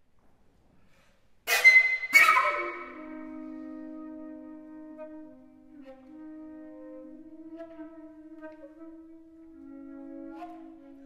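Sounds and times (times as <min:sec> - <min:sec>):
flutes holding low notes: 0:01.5 - 0:11.0.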